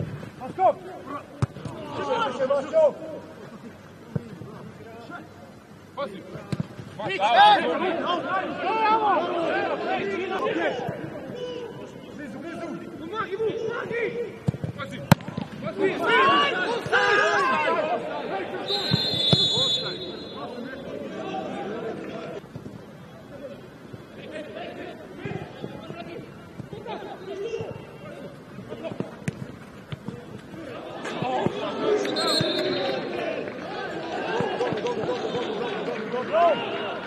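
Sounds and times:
players shouting: 0.4 - 3.4, 7.0 - 22.4, 23.4 - 37.0
high whistle tone: 18.7 - 20.6, 32.0 - 33.0.

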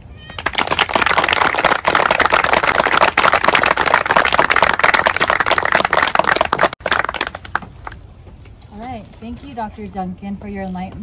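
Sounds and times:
audience applauding: 0.4 - 8.0.

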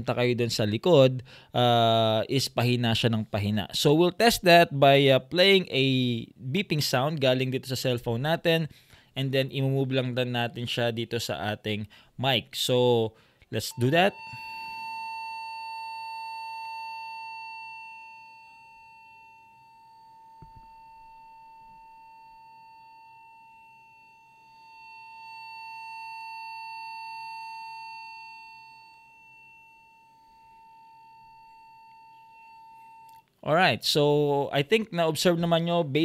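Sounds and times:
high-pitched test tone: 13.6 - 33.3.

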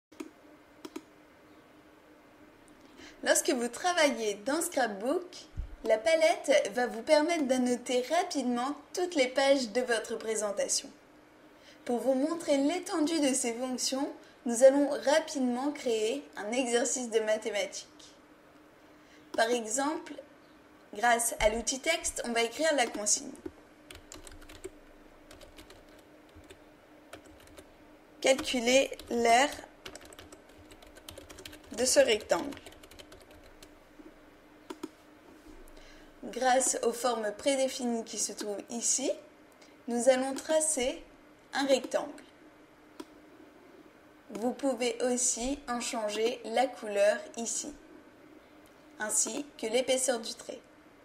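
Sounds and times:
faint steady hum: 0.1 - 51.0
typing on computer keyboard: 23.9 - 27.7, 28.3 - 33.7.

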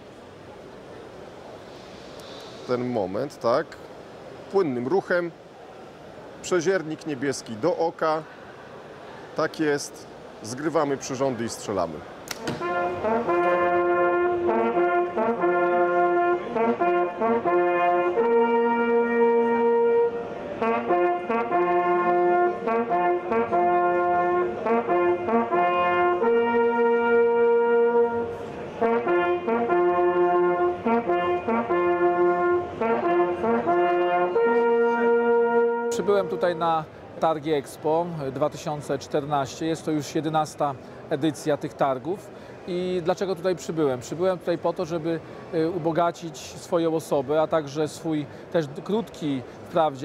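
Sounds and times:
brass fanfare: 12.4 - 36.7.

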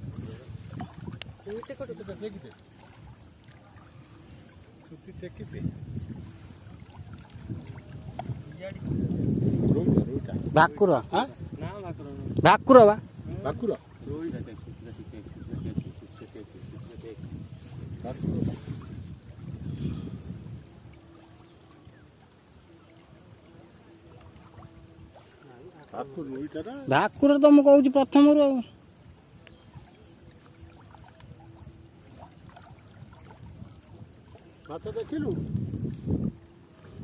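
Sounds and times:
small waves on shoreline: 0.0 - 37.0
wind: 0.0 - 37.0.

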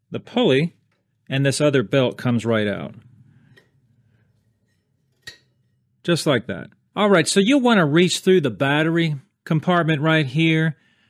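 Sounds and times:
faint handling sounds: 2.9 - 5.9.

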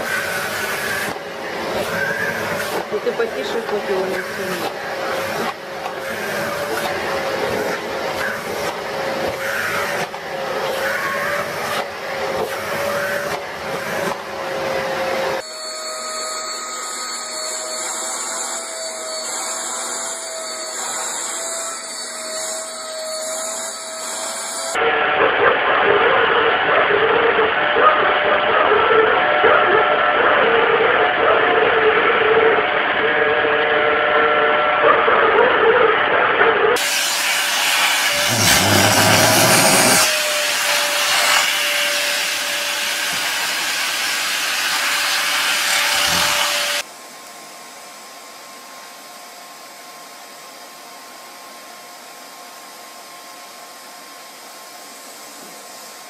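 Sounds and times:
vacuum cleaner motor whine: 0.0 - 25.3, 31.0 - 34.9, 35.9 - 56.0.

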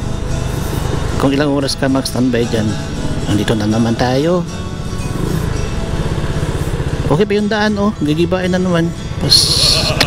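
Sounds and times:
scooter engine running: 4.2 - 10.0.

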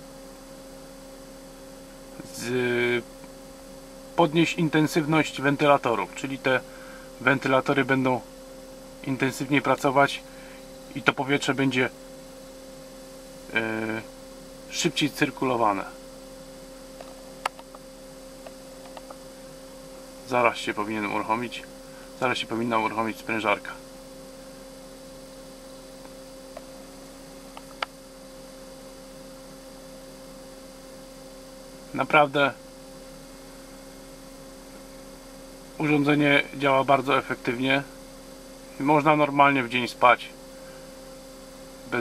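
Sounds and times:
air conditioner fans humming: 0.0 - 42.0.

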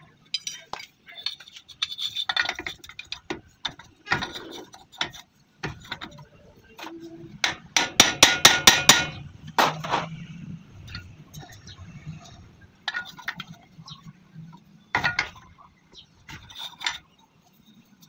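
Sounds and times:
metal tools clinking: 0.2 - 7.2, 10.9 - 18.0.

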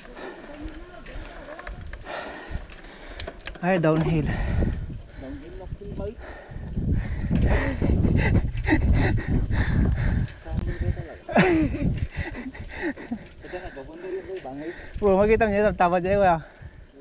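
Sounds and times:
bike rattles and clicks: 0.0 - 17.0
bike tyre rumble: 0.0 - 17.0
wind buffeting microphone: 0.0 - 17.0.

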